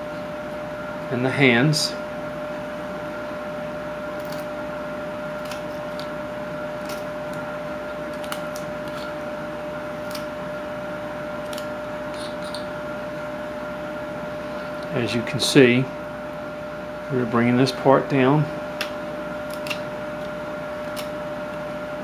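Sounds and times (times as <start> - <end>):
steady background hum: 0.0 - 22.0
knife carving wood snicks: 5.4 - 6.2, 6.8 - 9.2, 10.0 - 10.4, 11.4 - 12.7, 18.8 - 21.2.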